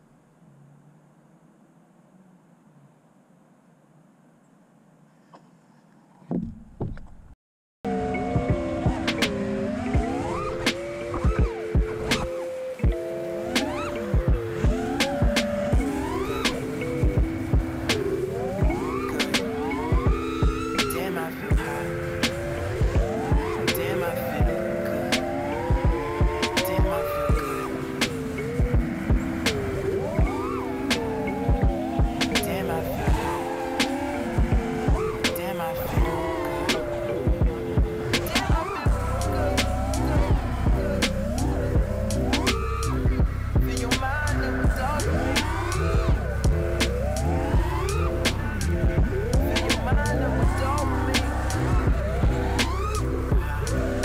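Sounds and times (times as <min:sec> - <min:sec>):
quadcopter motors whining: 0:07.9 - 0:54.0.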